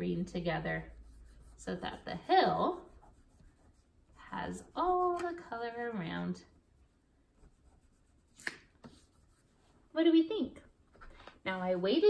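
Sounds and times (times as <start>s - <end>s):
fingertip rubbing on paper: 0.3s - 9.7s.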